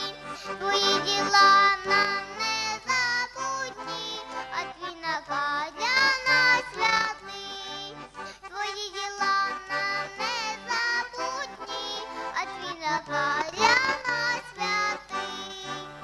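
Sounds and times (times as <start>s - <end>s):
accordion: 0.0s - 16.0s
boy singing folk song: 0.0s - 16.0s.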